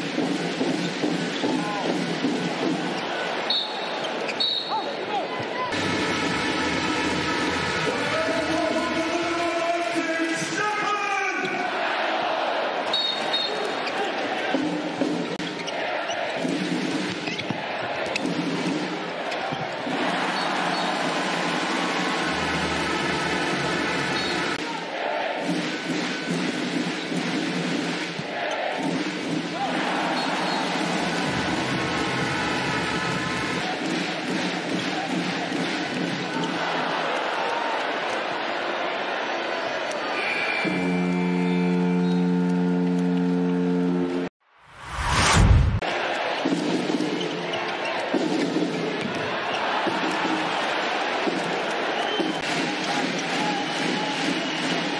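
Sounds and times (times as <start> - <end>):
crowd roar: 1.1 - 26.5, 27.2 - 54.9
crowd chanting: 11.2 - 25.8, 28.2 - 41.1, 44.8 - 54.9
arena horn low blast: 40.2 - 44.3.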